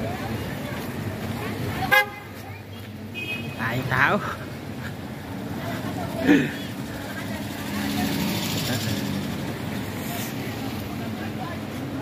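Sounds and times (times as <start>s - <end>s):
voices of passers-by: 0.0s - 12.0s
tyres hissing on wet pavement: 4.1s - 11.9s.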